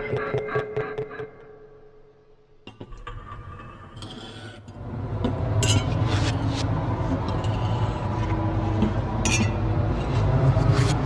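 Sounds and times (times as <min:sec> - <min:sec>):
low drone: 0:04.7 - 0:11.0.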